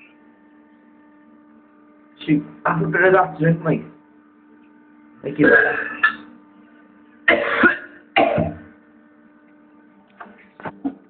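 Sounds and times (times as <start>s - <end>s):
electrical hum: 0.0s - 11.0s
man coughing and retching: 5.4s - 6.3s, 7.3s - 8.6s.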